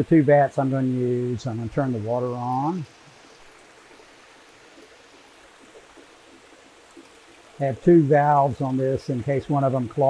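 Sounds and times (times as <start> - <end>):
water trickling: 0.0 - 10.0.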